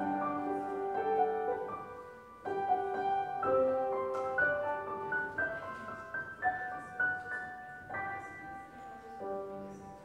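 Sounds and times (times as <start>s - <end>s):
slow keyboard music: 0.0s - 10.0s.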